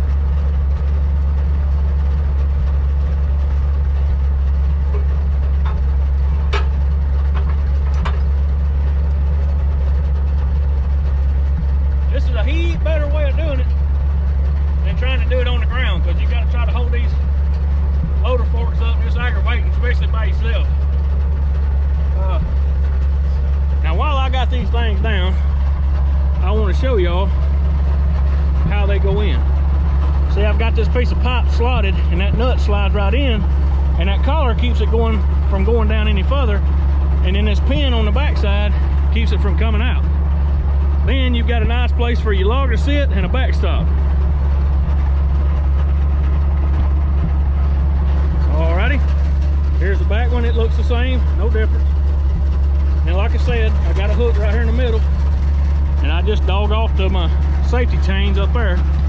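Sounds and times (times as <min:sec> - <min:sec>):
truck engine idling: 0:00.0 - 0:59.0.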